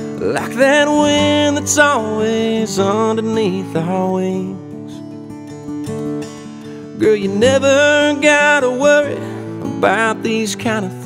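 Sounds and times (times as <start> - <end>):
acoustic guitar strumming chords: 0.0 - 11.0.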